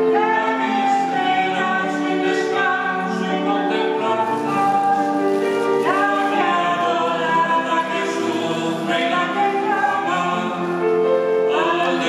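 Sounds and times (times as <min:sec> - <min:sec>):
grand piano: 0:00.0 - 0:12.0
person singing: 0:00.0 - 0:12.0.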